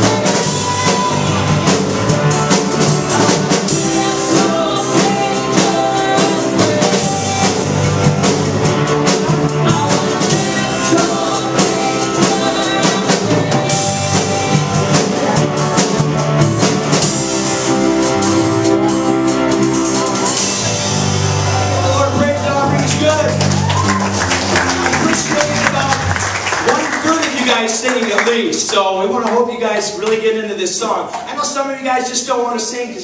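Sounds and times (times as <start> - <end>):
person singing: 0.0 - 16.2
guitars: 0.0 - 26.3
drum kit: 0.0 - 31.8
keyboard: 0.0 - 33.0.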